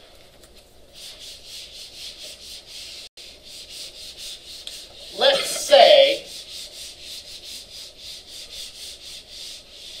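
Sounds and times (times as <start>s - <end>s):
eraser rubbing whiteboard: 0.9s - 10.0s.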